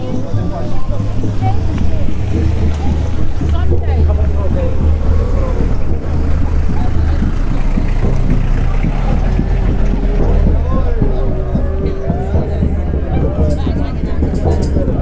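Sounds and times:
indistinct voices of people: 0:00.0 - 0:15.0.

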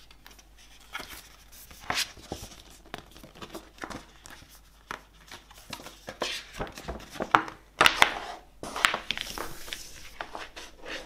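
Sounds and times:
paper rustling and crinkling: 0:00.0 - 0:11.0.

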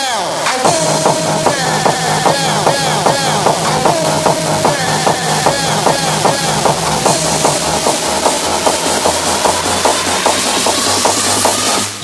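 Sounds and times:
electronic dance beat: 0:00.0 - 0:12.0
rising synth sweep: 0:00.5 - 0:12.0.

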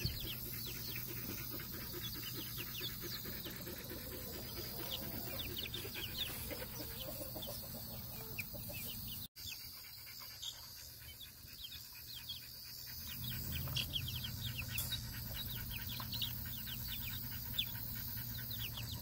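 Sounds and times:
chicks peeping: 0:00.0 - 0:19.0.

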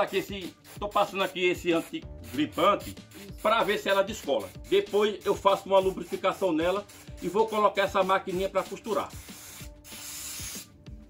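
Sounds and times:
aerosol can spraying: 0:00.0 - 0:10.9.

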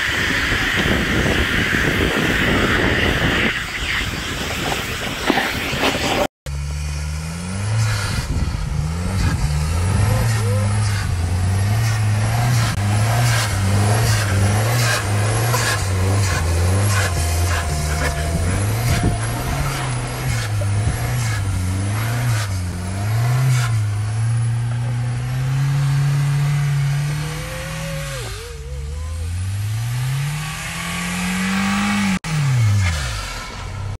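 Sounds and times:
wheels spinning through snow: 0:00.0 - 0:06.3, 0:06.9 - 0:34.0
car engine revving: 0:00.0 - 0:34.0.

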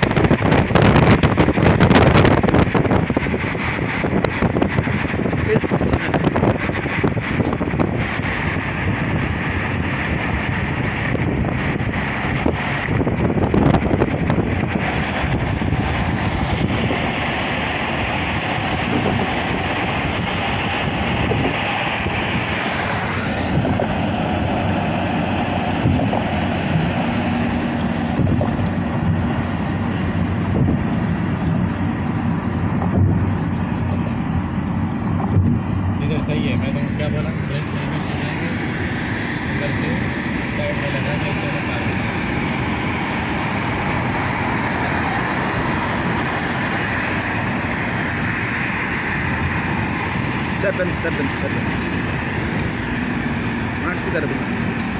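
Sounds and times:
car road and wind noise: 0:00.0 - 0:54.9.

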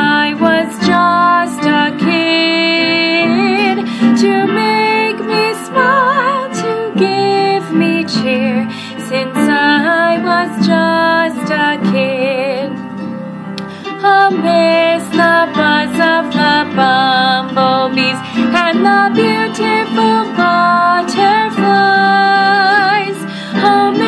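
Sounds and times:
woman singing with vibrato: 0:00.0 - 0:12.8, 0:14.0 - 0:24.0
instrumental accompaniment: 0:00.0 - 0:24.0.

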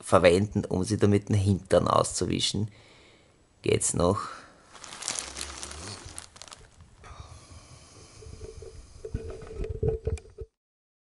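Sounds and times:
plastic wrapping crinkling: 0:04.6 - 0:07.0
man snoring: 0:07.0 - 0:08.4.

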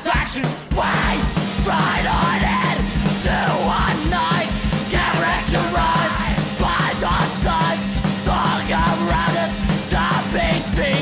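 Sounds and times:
folk punk band playing loud: 0:00.0 - 0:11.0
shouted vocal: 0:00.0 - 0:11.0.

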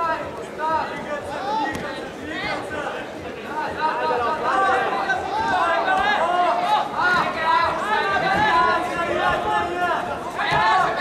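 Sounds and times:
crowd chatter: 0:00.0 - 0:11.0
voices shouting and calling out: 0:00.0 - 0:11.0.

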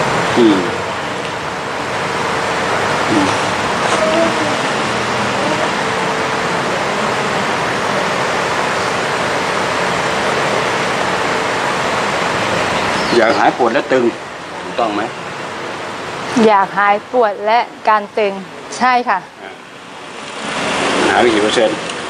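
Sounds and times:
faint low hum: 0:00.0 - 0:22.0
steady rushing noise: 0:00.0 - 0:22.0
faint murmurs of voice: 0:00.3 - 0:01.2, 0:03.1 - 0:10.8, 0:12.8 - 0:15.1, 0:19.3 - 0:19.6.

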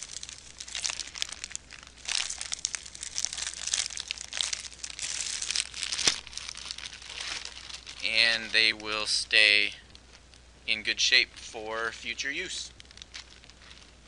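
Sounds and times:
plastic bag crinkling: 0:00.0 - 0:14.0.

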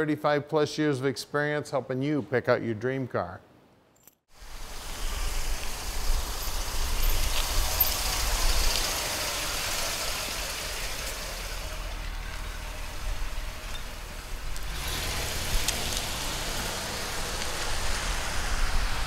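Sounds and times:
car engine driving past: 0:04.7 - 0:19.0.

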